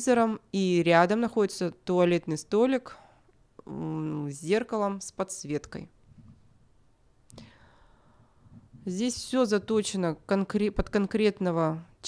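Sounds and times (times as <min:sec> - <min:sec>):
woman speaking: 0:00.0 - 0:03.0, 0:03.6 - 0:06.0, 0:08.8 - 0:12.0.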